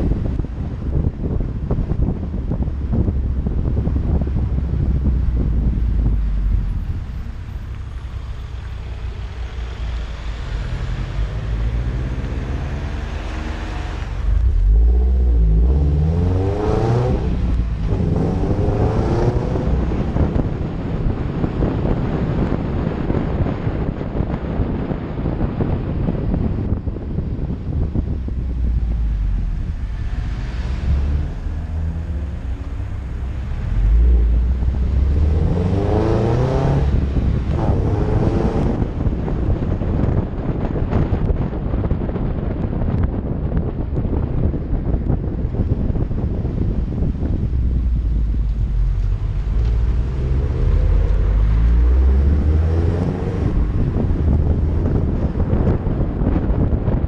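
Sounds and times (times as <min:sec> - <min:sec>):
car engine accelerating: 0:00.0 - 0:57.0
road noise: 0:00.0 - 0:57.0.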